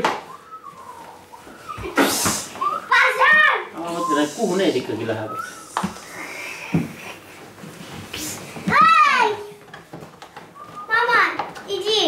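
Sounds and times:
small children's voices: 0:00.7 - 0:04.4, 0:08.2 - 0:09.8, 0:10.6 - 0:12.0
child squealing: 0:01.7 - 0:04.5.

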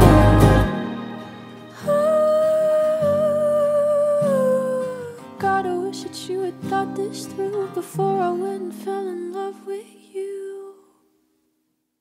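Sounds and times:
sustained low chords: 0:00.0 - 0:01.3.

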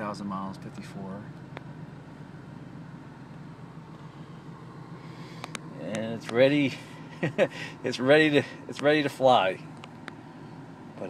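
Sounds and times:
car engine idling inside cabin: 0:00.0 - 0:11.0.

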